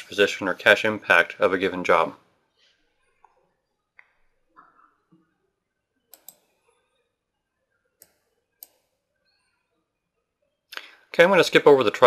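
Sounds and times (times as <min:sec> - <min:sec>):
faint computer mouse clicks: 0:06.1 - 0:06.5.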